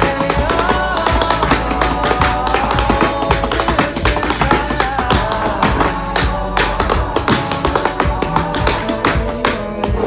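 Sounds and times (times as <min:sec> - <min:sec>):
recorded music: 0:00.0 - 0:10.0
tap shoes on hardwood floor: 0:00.0 - 0:10.0.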